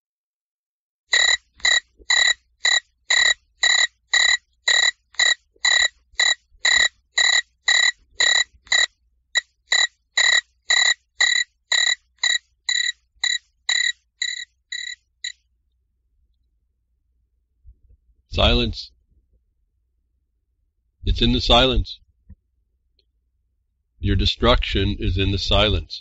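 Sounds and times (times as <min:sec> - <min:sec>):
animal-like call: 0:01.2 - 0:08.9, 0:09.7 - 0:15.0.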